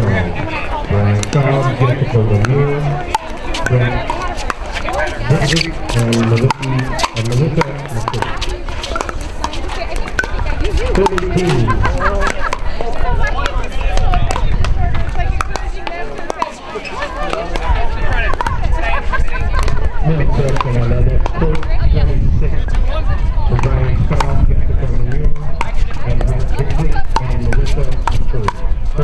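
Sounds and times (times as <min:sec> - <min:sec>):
people talking: 0:00.0 - 0:29.0
paddles hitting plastic ball: 0:02.4 - 0:12.6.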